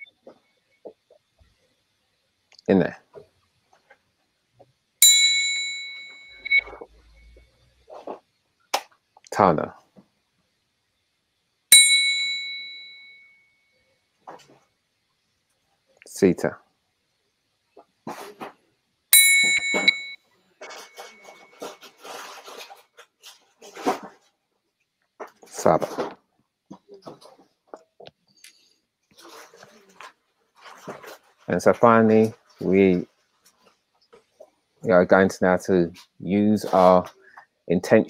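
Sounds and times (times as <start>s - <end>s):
metal triangle ringing: 5.0s - 6.6s, 11.7s - 13.4s, 19.2s - 20.2s
light taps on triangle: 19.2s - 20.2s.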